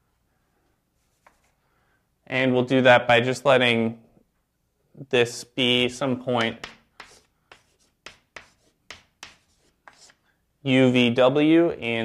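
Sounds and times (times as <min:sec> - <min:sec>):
chalk tapping and scratching on blackboard: 0:01.0 - 0:01.6, 0:06.2 - 0:10.2.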